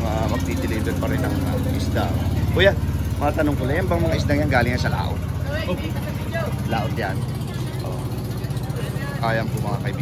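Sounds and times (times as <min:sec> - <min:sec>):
engine running at low revs: 0:00.0 - 0:10.0.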